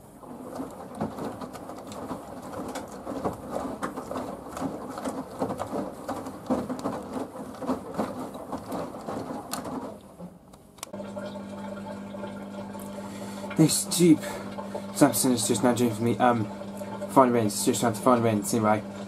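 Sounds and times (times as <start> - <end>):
washing machine sloshing water: 0.0 - 19.0.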